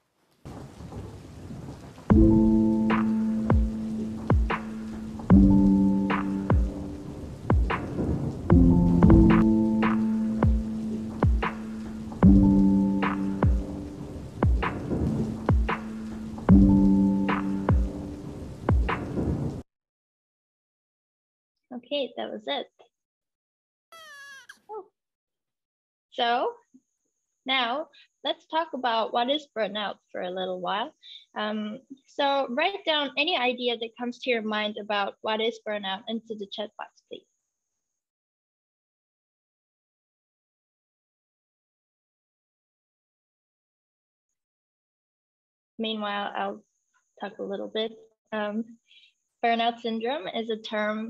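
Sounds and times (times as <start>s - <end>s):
low rumble: 2.1s - 18.6s
steady hiss: 13.0s - 16.5s
short high-pitched cry: 23.9s - 24.7s.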